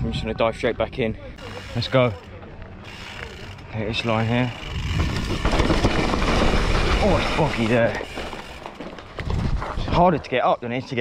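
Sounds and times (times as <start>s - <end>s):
tyres scrabbling over roots: 1.4s - 10.4s
bike rattling: 1.4s - 11.0s.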